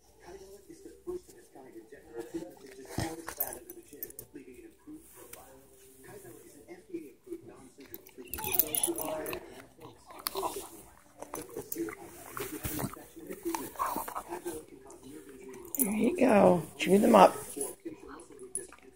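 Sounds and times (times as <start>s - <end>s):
dog chewing treat: 7.8s - 18.9s.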